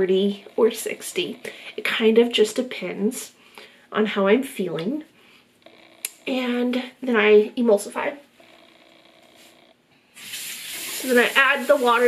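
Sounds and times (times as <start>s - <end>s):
water running into basin: 10.2s - 12.0s.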